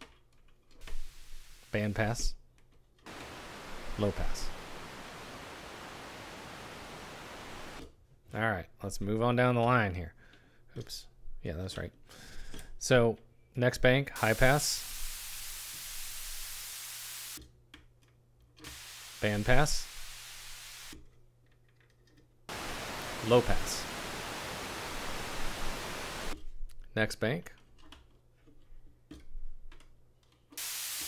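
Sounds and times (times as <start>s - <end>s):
bright filtered white noise hiss: 0.8s - 2.4s, 3.1s - 7.8s, 14.0s - 17.4s, 18.6s - 21.0s, 22.5s - 26.4s, 30.6s - 31.0s.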